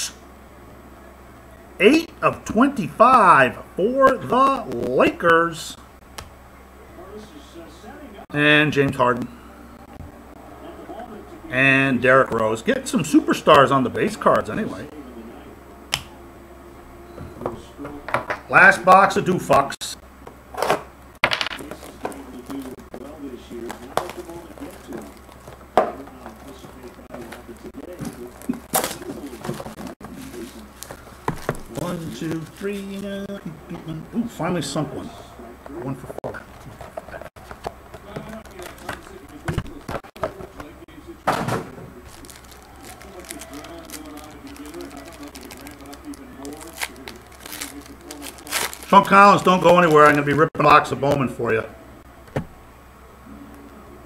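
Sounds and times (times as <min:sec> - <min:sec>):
card packs crinkling: 0:21.6 - 0:33.9, 0:36.3 - 0:40.8, 0:41.9 - 0:50.8.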